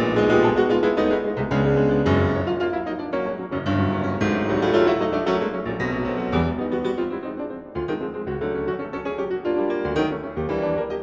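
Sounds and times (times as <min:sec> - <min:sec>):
solo grand piano chords: 0:00.0 - 0:11.0.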